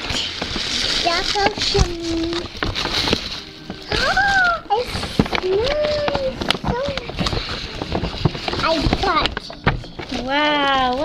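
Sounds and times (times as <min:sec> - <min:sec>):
tissue paper rustling: 0:00.0 - 0:11.0.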